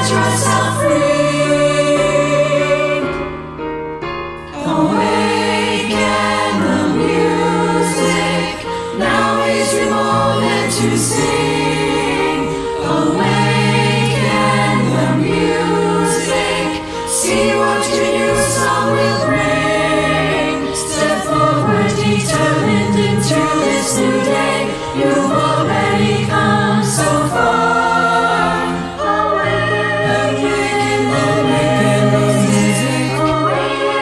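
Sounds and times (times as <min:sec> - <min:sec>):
mixed choir singing in harmony: 0:00.0 - 0:03.6, 0:04.4 - 0:34.0.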